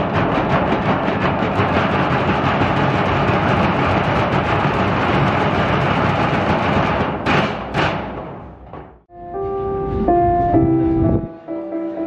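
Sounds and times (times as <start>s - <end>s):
sticks beating oil drums: 0.0s - 9.0s.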